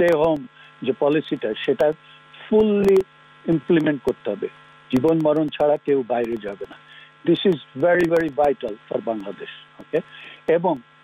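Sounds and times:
man speaking: 0.0 - 10.8
low electrical hum: 0.0 - 11.0.

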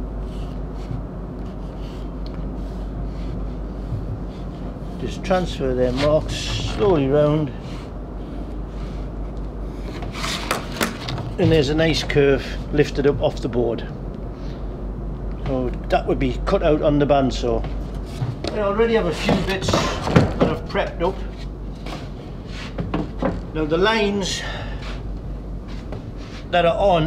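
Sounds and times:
wood rubbing on wood: 0.1 - 12.7
wooden board scraping: 9.8 - 11.7.

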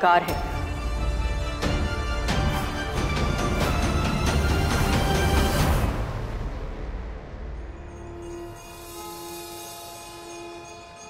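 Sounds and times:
steady horn-like tone: 7.6 - 11.0.

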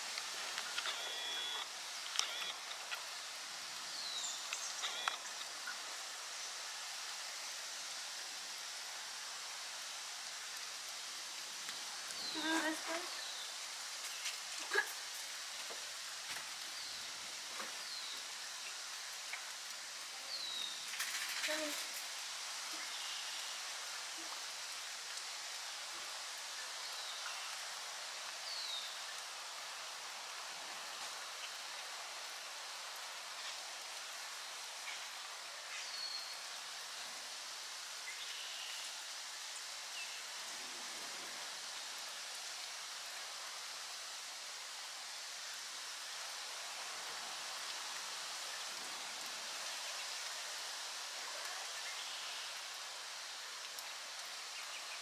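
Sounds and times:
rain falling on leaves and water: 0.0 - 55.0.

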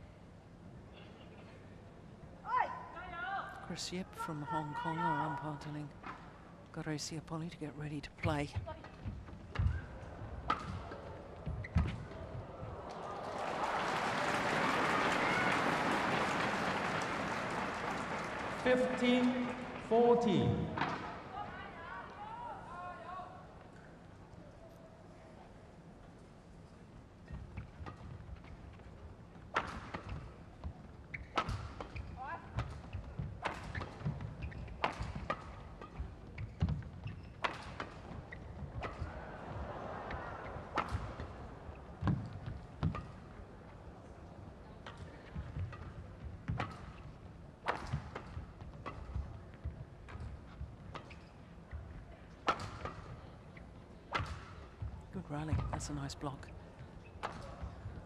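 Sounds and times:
shoes squeaking on court: 8.8 - 12.4, 30.0 - 39.1, 48.7 - 54.5, 55.5 - 58.0.

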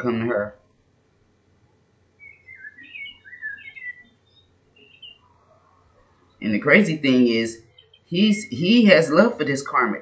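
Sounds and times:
bird chirping: 2.0 - 8.9.

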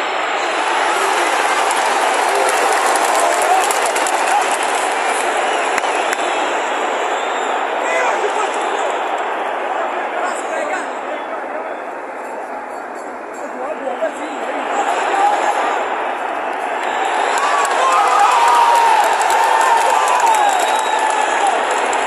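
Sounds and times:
stadium crowd din: 0.0 - 22.0.

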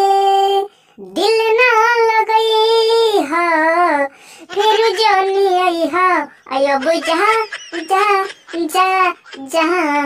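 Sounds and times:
high-pitched voice singing: 0.0 - 10.0.

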